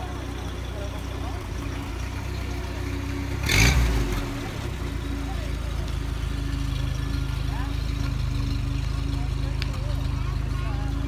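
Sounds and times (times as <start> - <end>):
faint crowd voices: 0.0 - 11.0
vehicle engines running slowly: 0.0 - 11.0.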